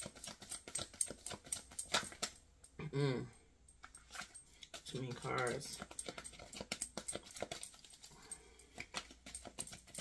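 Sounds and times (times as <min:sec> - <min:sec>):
cards being shuffled: 0:00.0 - 0:02.4, 0:04.0 - 0:08.1, 0:08.8 - 0:10.0.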